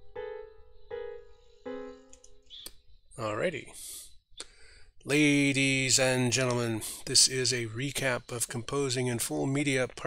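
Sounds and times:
piano chords: 0:00.0 - 0:02.6.

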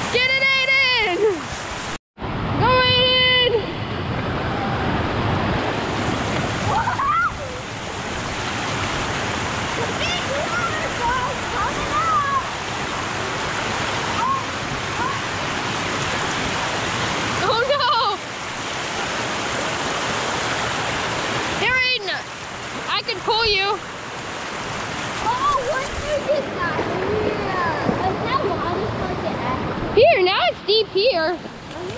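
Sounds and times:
water rushing over rock: 0:00.0 - 0:31.9.

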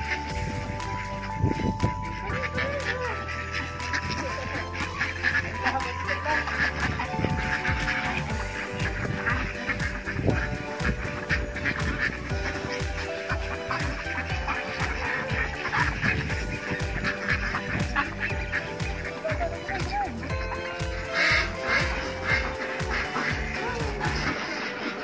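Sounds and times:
ducks quacking: 0:00.0 - 0:25.0.

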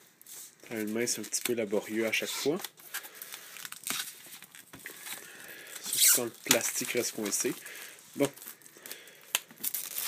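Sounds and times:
plastic wrap crinkling: 0:00.3 - 0:10.0.

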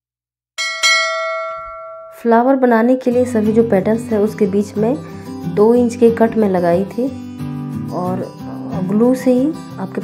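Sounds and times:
bell chime ringing: 0:00.6 - 0:02.4.

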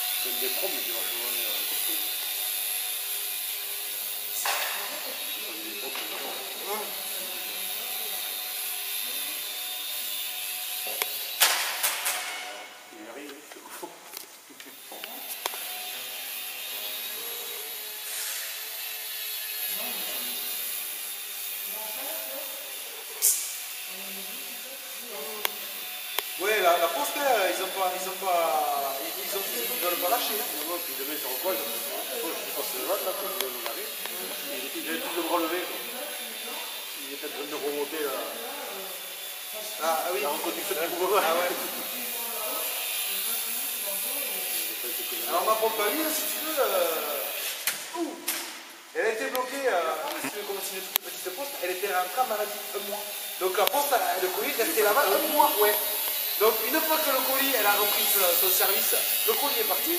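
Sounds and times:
electric motor and propeller whining: 0:00.0 - 0:11.8, 0:14.6 - 0:48.2, 0:50.0 - 0:59.9
people talking: 0:00.2 - 0:02.1, 0:04.5 - 0:08.4, 0:26.4 - 0:39.0, 0:39.6 - 0:47.3, 0:49.0 - 0:59.9
steady high hiss: 0:39.5 - 0:59.9.

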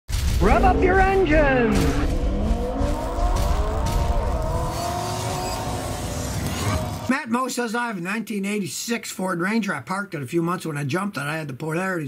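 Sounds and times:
sharp hits: 0:00.1 - 0:07.1
car engine revving up: 0:00.4 - 0:07.1.

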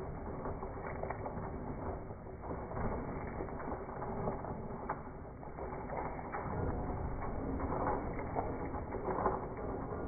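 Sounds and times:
slowed sheep hooves trotting on mud: 0:00.0 - 0:10.0.

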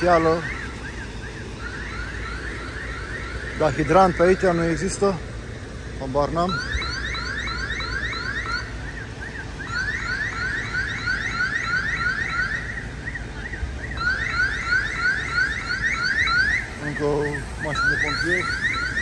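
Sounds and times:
electronic alarm rising chirps: 0:00.0 - 0:19.0.

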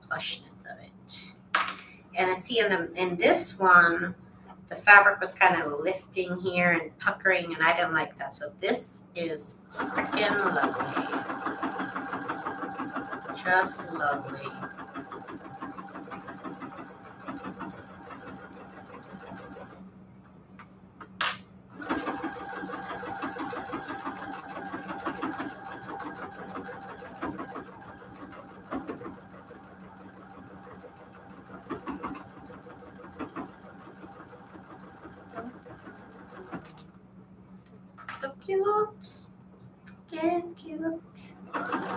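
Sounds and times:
sewing machine stitching: 0:09.7 - 0:19.8, 0:21.7 - 0:36.9, 0:41.4 - 0:41.9.

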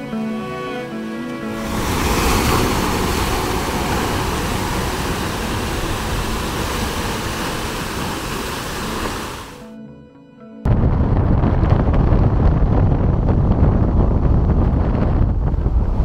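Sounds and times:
guitar music: 0:00.0 - 0:08.3
ocean waves rushing: 0:00.0 - 0:09.6.

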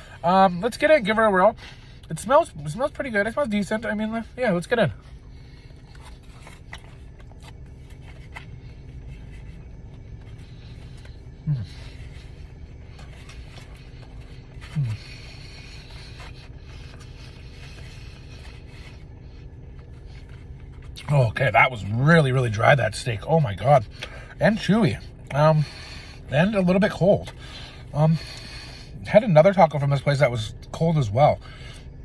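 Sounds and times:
car interior hum: 0:00.0 - 0:32.0
man chewing food: 0:05.0 - 0:21.1
man murmuring hmm: 0:11.4 - 0:11.9, 0:14.7 - 0:15.0.

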